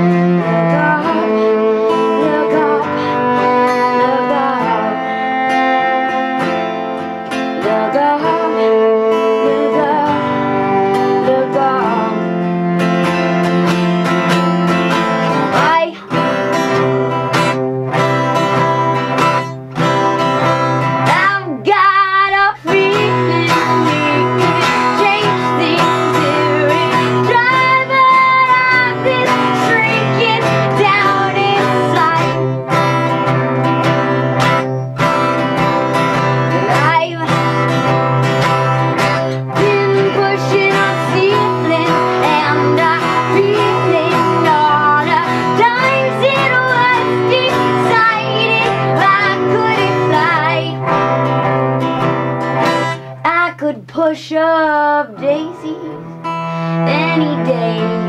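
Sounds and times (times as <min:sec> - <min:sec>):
bowed cello: 0:00.0 - 0:21.4, 0:22.0 - 0:53.1, 0:55.4 - 0:58.0
acoustic guitar strumming: 0:00.0 - 0:58.0.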